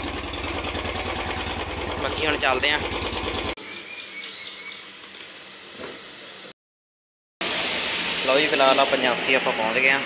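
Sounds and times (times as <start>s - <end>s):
motorcycle engine idling: 0.0s - 3.6s.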